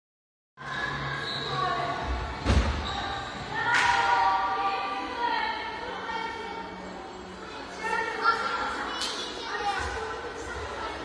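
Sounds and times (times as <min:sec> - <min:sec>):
children's voices: 0:07.4 - 0:11.0.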